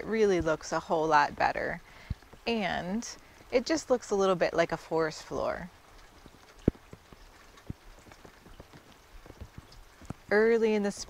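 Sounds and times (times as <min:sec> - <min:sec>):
light taps and clicks: 0:05.9 - 0:10.4.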